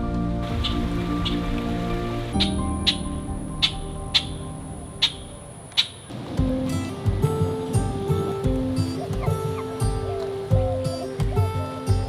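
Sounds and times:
soft instrumental music: 0.0 - 12.0
light high ticks: 5.0 - 6.1.

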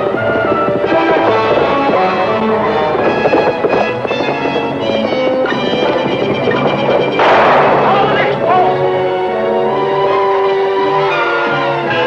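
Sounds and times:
dramatic orchestral music: 0.0 - 12.0
loud crash: 7.2 - 9.1.

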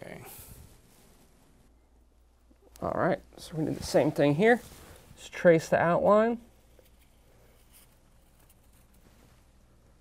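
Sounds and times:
man speaking: 0.0 - 0.5, 2.7 - 6.5
faint low hum: 0.0 - 10.0.

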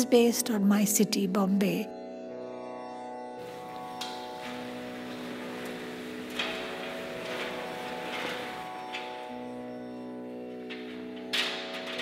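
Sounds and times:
droning background music: 0.0 - 12.0.

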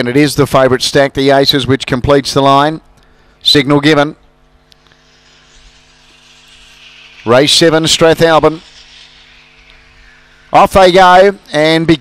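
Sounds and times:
steady low hum: 0.0 - 12.0
mechanical lure whirring on rail: 4.4 - 12.0.

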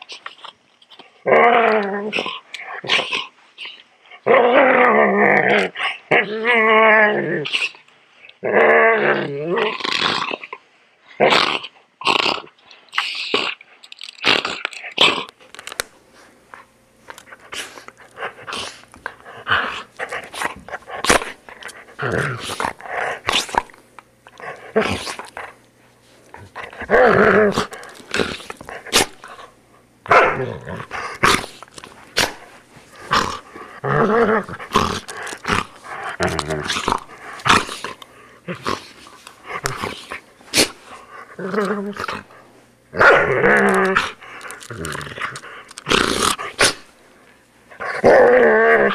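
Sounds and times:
dog growling: 1.2 - 3.3, 4.2 - 7.8, 8.4 - 10.6, 17.6 - 25.6, 26.3 - 29.5, 30.1 - 31.6, 33.0 - 46.8, 47.7 - 48.9.

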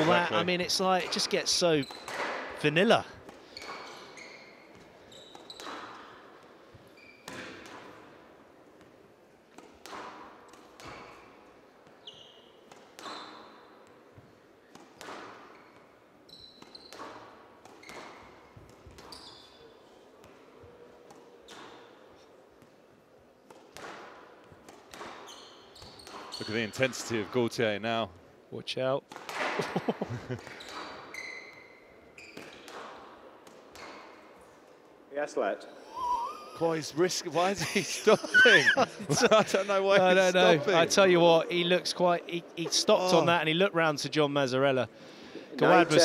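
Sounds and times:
shoes squeaking on court floor: 0.0 - 22.8, 23.5 - 27.4, 30.3 - 34.9
squash ball cracking off walls: 9.5 - 11.4, 29.1 - 29.6.

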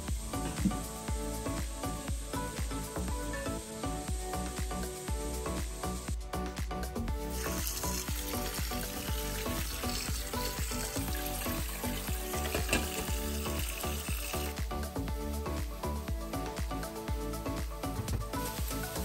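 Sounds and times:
background music: 0.0 - 19.0
vegetables sizzling in pan: 7.3 - 14.6, 18.4 - 19.0.

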